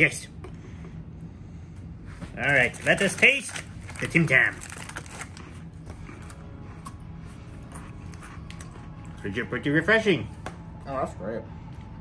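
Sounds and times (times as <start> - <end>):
steady low hum: 0.0 - 12.0
packet crinkling: 2.5 - 5.4.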